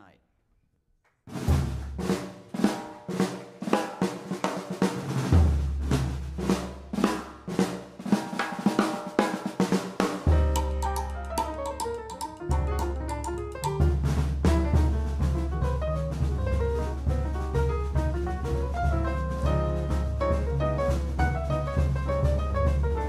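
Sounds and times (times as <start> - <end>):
drum kit hits: 1.3 - 23.0
piano chords: 10.2 - 23.0
double bass notes: 10.3 - 23.0.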